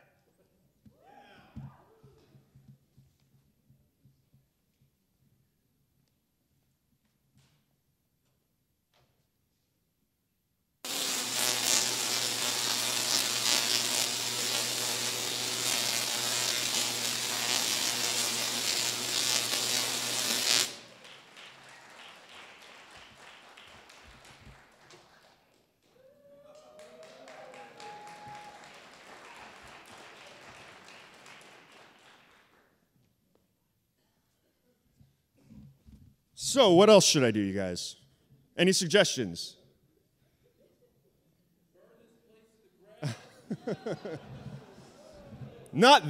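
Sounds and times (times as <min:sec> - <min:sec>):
tesla coil buzzing: 0:10.8 - 0:20.9
applause: 0:20.7 - 0:32.8
person whooping: 0:25.9 - 0:28.8.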